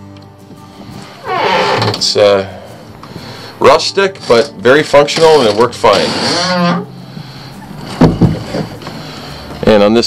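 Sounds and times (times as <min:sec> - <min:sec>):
heavy door thump: 0:07.9 - 0:08.7.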